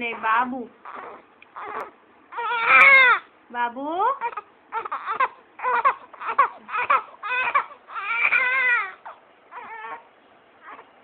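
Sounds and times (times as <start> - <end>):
infant crying: 0.0 - 3.3, 4.2 - 10.9.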